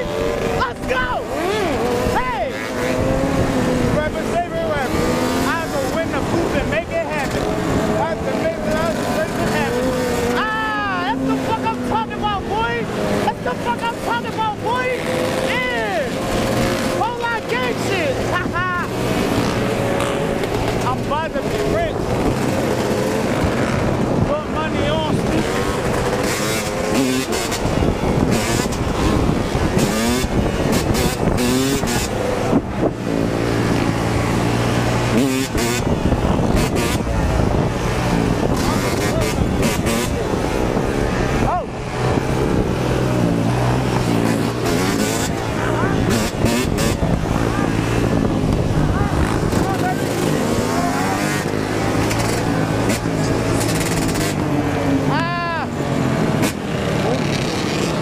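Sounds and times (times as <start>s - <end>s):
dirt bike engines revving: 0.0s - 58.0s
wind buffeting microphone: 18.9s - 50.7s.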